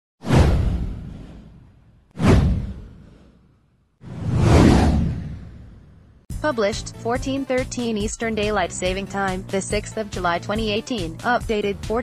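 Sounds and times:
deep boom sweeping down: 0.2s - 6.3s
whoosh: 0.2s - 6.3s.

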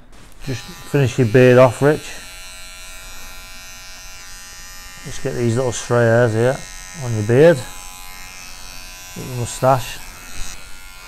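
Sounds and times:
electric hair clippers buzzing: 0.1s - 11.0s.

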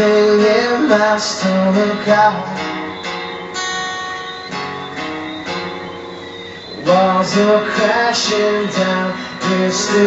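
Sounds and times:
guitar strumming chords: 0.0s - 10.0s.

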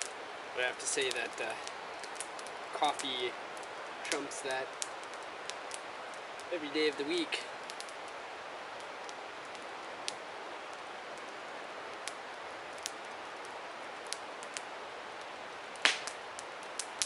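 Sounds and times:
campfire crackling and popping: 0.0s - 17.0s.

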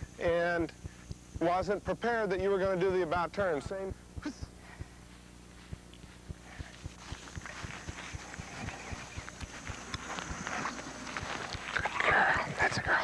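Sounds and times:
rustling hiss with small clicks: 0.0s - 13.0s
footsteps on grass: 0.2s - 12.6s.

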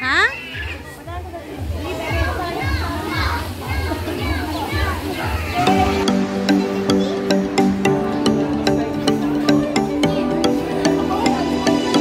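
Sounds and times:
children calling and chattering: 0.0s - 12.0s
music: 1.1s - 12.0s.

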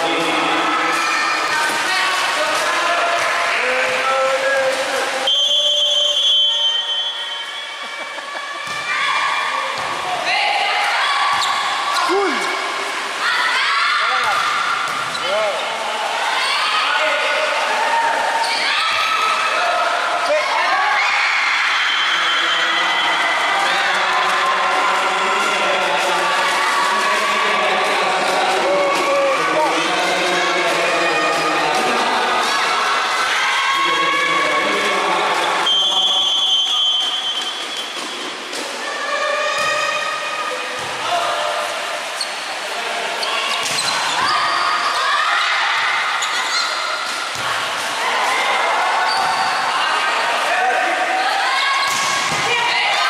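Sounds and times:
people shouting and cheering: 0.0s - 53.0s
referee's whistle: 5.2s - 7.7s, 35.6s - 37.8s.

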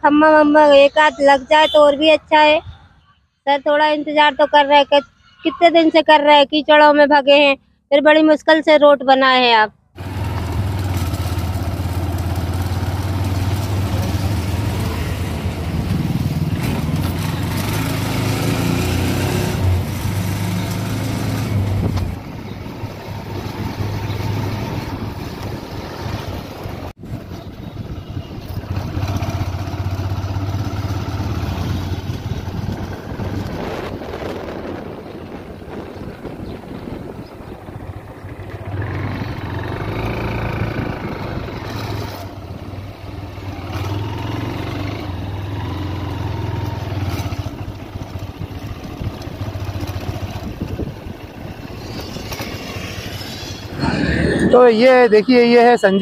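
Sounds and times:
wind and road noise: 0.0s - 56.0s
vehicle engine running: 10.0s - 56.0s.

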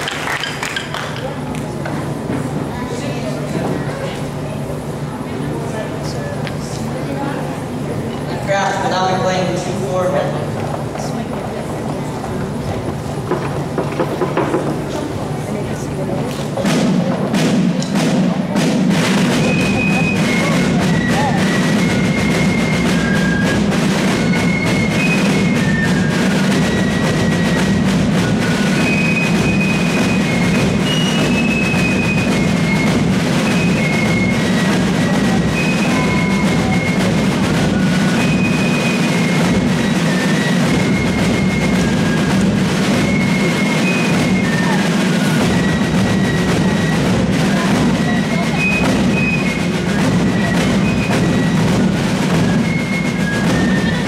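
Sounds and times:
snare and bass drumming: 0.0s - 4.2s, 8.5s - 54.0s
fifes playing shrill melody: 18.0s - 54.0s.

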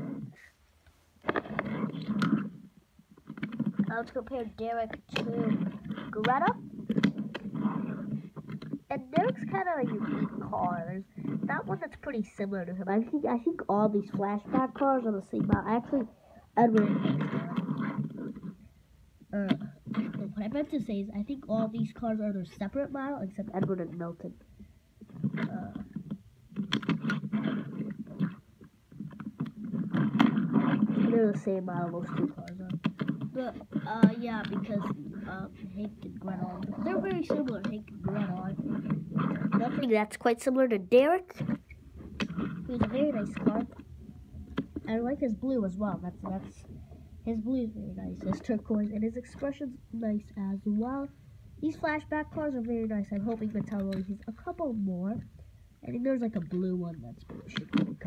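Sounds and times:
toy car wheels rumbling on wood: 1.2s - 18.7s, 19.4s - 58.0s
toy cars clicking and knocking: 3.2s - 18.6s, 25.1s - 40.1s.

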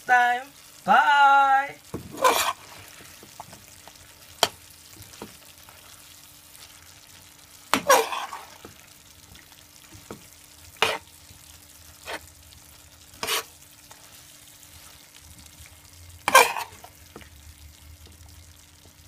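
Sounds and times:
faint sizzle: 0.0s - 19.0s.

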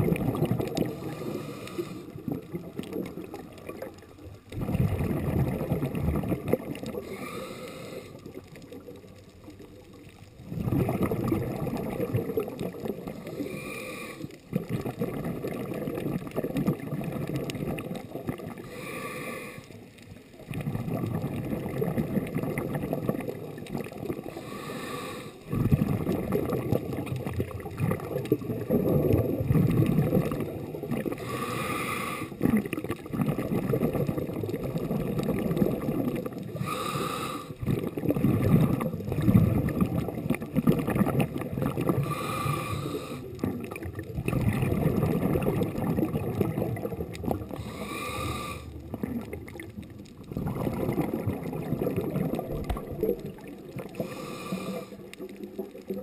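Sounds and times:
exhaled bubbles underwater: 0.0s - 56.0s
regulator inhale hiss: 0.8s - 2.2s, 7.0s - 8.4s, 13.1s - 14.4s, 18.6s - 19.9s, 24.2s - 25.5s, 31.2s - 32.4s, 36.5s - 37.6s, 42.0s - 43.4s, 47.5s - 48.8s, 54.0s - 55.2s.

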